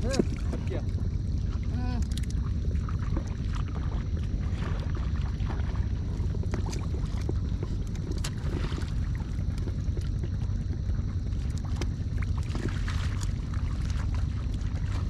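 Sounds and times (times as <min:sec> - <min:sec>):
steady low rumble: 0:00.0 - 0:15.0
hands squelching in wet mud: 0:01.6 - 0:10.5, 0:11.3 - 0:15.0.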